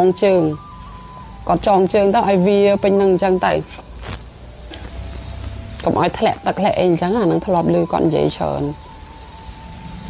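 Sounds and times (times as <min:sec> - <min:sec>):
high-pitched insect chorus: 0:00.0 - 0:10.0.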